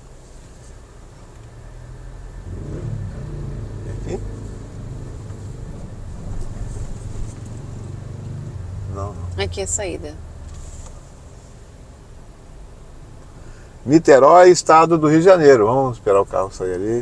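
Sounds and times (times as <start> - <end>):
traffic engine and road rumble: 0.0 - 17.0.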